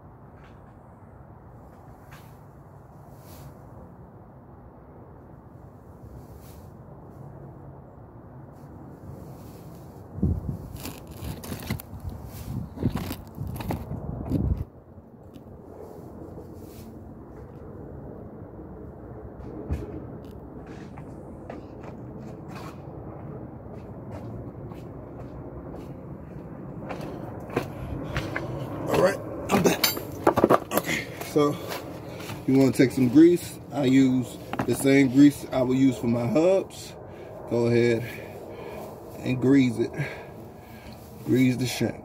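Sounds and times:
handling clicks and knocks: 29.6 - 30.9.

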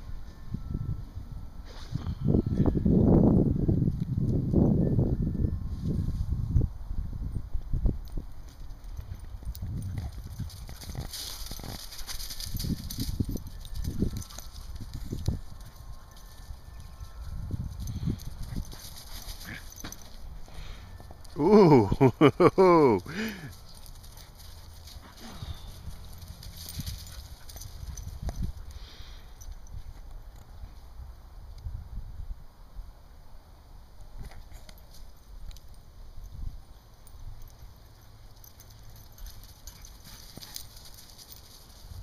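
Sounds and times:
dog paws thudding on grass: 8.5 - 15.2.

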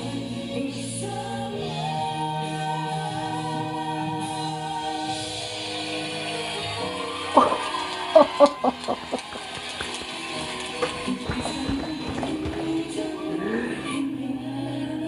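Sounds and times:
pop ballad duet: 0.0 - 15.0
people laughing and clapping: 5.4 - 14.0.

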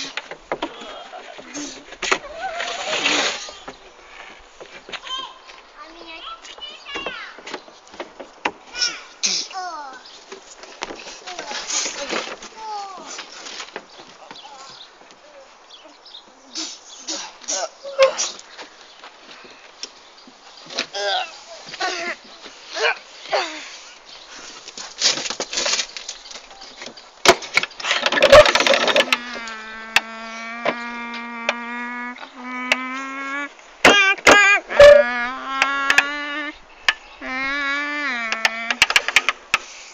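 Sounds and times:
rustling handling noise: 18.3 - 29.3
knocks and scuffs on climbing frame: 24.3 - 29.2
person humming buzzing low note: 29.1 - 33.5, 34.8 - 36.6, 37.2 - 39.0.

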